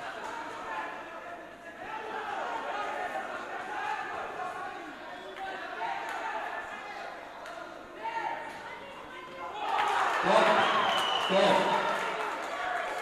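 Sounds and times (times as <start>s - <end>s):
indistinct voices in a hall: 0.0s - 13.0s.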